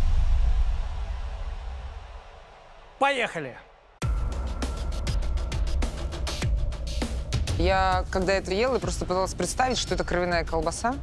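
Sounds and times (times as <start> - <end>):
deep rumbling boom: 0.0 - 2.2.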